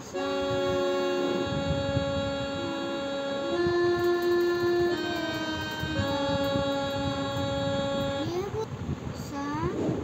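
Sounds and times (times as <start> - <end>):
keyboard harmonium notes: 0.0 - 8.6.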